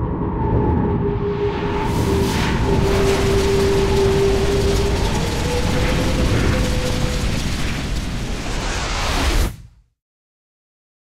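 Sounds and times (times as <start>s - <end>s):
rumble of crumbling debris: 1.2s - 9.7s.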